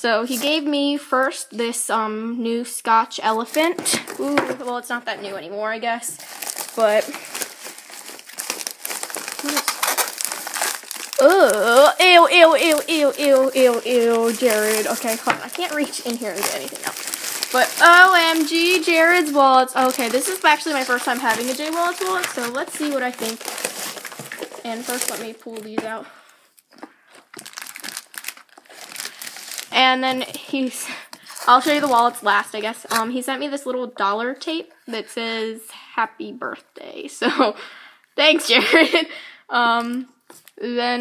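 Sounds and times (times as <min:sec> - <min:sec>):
plastic bag crinkling: 0:06.1 - 0:26.0, 0:26.6 - 0:33.1.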